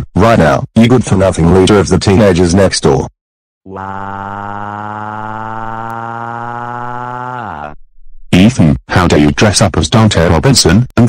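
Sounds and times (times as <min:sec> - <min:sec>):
synthesized cartoon voice wailing: 0:03.7 - 0:07.8.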